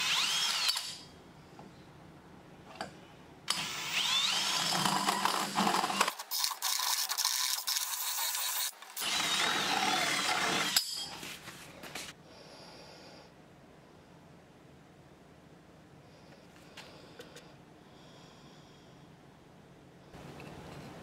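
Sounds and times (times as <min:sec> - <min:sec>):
power drill cutting plastic: 0:00.0 - 0:01.0, 0:03.5 - 0:11.0.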